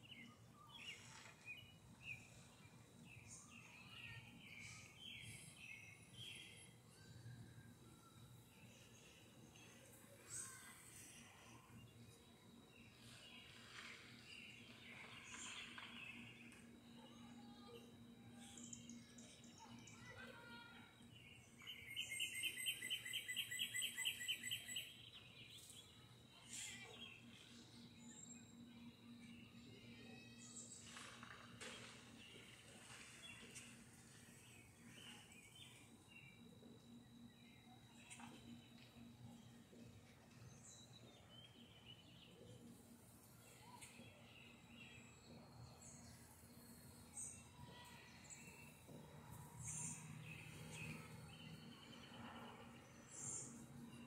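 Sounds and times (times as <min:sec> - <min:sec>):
faint steady hum: 0:00.0 - 0:54.0
bird chirping and trilling: 0:21.6 - 0:25.1.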